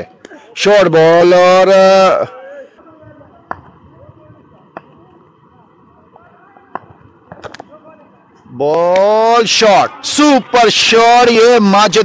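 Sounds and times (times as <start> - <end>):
faint distant voices: 1.8 - 11.6.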